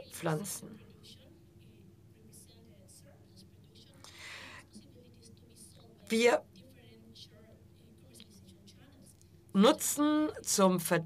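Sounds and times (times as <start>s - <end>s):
faint low hum: 0.0s - 11.0s
murmur: 0.0s - 11.0s
breath into microphone: 4.0s - 4.7s.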